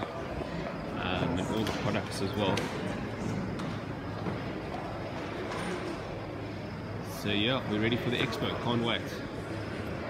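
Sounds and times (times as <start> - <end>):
indoor hall hum: 0.0 - 10.0.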